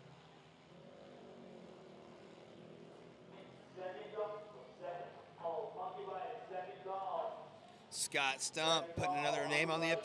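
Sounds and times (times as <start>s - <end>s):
mini motorcycle engines droning: 0.0s - 10.0s.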